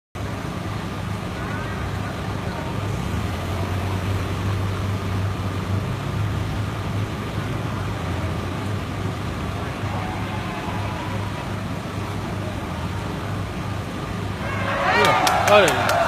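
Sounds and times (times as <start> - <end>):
low engine hum: 0.2 - 16.0
traffic noise: 0.2 - 16.0.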